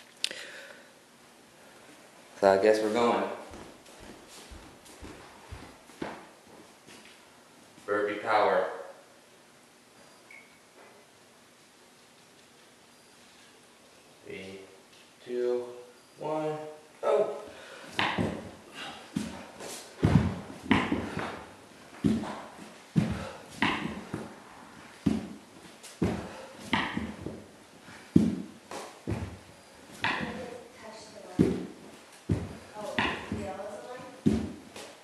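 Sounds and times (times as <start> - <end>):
hard breathing: 0.2 - 1.0, 17.4 - 18.0, 18.6 - 20.0, 21.0 - 21.6, 22.2 - 25.0, 26.0 - 28.4
thumps on a wooden floor: 18.0 - 18.6, 20.0 - 21.4, 23.0 - 24.3, 26.0 - 27.4, 29.1 - 29.4, 30.0 - 30.5, 32.3 - 33.5.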